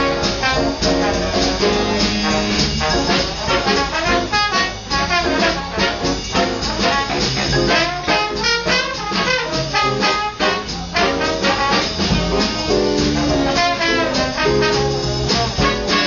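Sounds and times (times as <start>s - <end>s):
big band swing jazz: 0.0s - 16.0s
brass section playing: 0.0s - 16.0s
drums: 0.0s - 16.0s.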